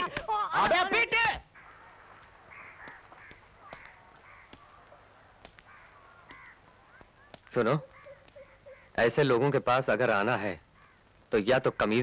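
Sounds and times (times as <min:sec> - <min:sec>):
crows cawing: 0:00.5 - 0:09.4, 0:10.6 - 0:12.0.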